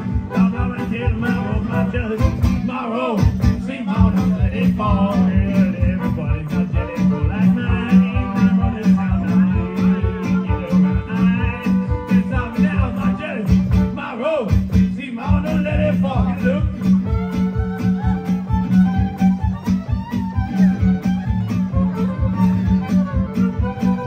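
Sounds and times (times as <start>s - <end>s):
strummed guitar: 0.0s - 24.0s
fiddle bowed: 4.8s - 13.9s, 16.2s - 24.0s.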